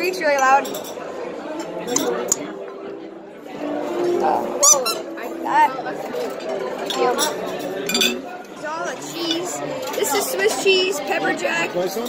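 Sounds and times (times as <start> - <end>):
dining room chatter: 0.0 - 12.0.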